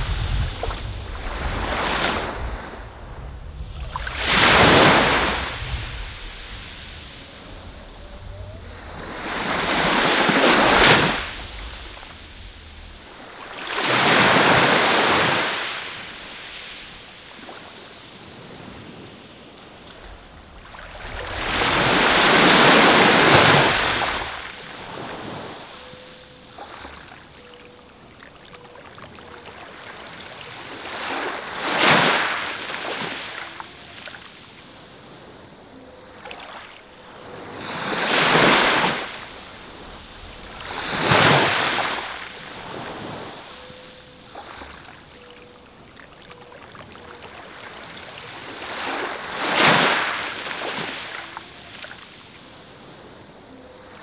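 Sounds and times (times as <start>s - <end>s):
low rumble of water: 0.0s - 15.0s
sea waves washing onto beach: 0.0s - 54.0s.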